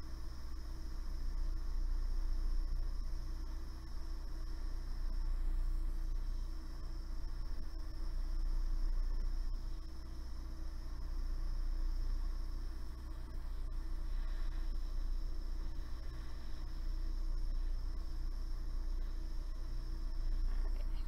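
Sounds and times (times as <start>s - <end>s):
soldering torch hissing: 11.9s - 21.0s.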